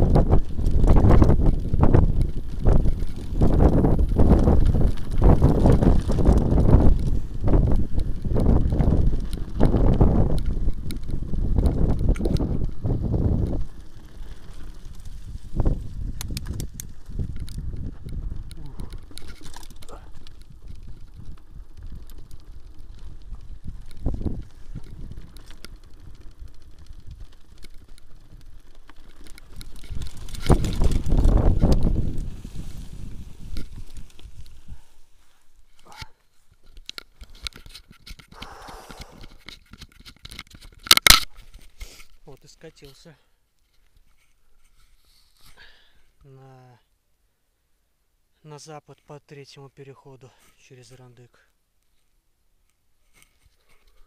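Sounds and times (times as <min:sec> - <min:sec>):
wind rumble on microphone: 0:00.0 - 0:35.2
bike rattling over bumps: 0:00.0 - 0:46.0.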